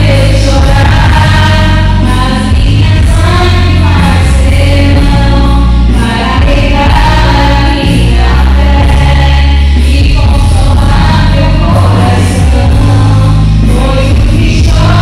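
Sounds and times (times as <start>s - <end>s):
amplified backing music with bass: 0.0s - 15.0s
women singing through microphones: 0.0s - 15.0s.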